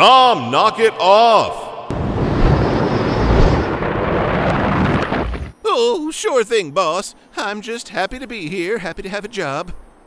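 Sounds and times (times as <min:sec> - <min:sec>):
deep cartoon rumble: 0:01.9 - 0:05.5.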